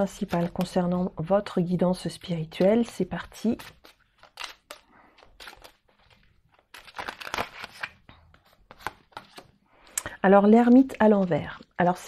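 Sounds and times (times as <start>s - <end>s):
cards shuffling and flicking: 2.5s - 9.6s.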